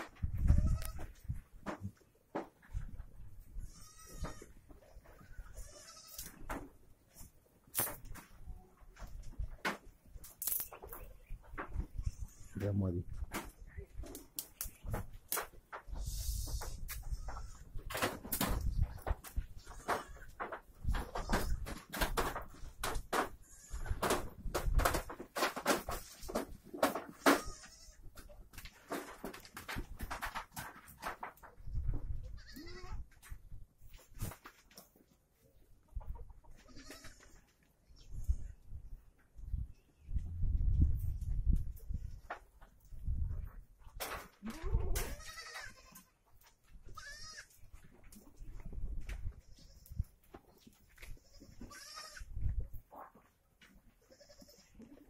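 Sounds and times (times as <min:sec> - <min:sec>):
goats bleating: 0:05.5 - 0:06.3, 0:32.4 - 0:33.0, 0:36.6 - 0:37.4, 0:44.4 - 0:46.1, 0:46.9 - 0:47.6, 0:51.2 - 0:52.3, 0:54.0 - 0:54.9.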